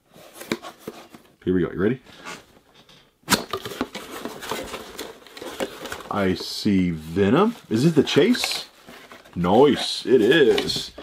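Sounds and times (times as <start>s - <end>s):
cardboard and bubble wrap rustling: 0.0s - 1.4s, 3.3s - 11.0s.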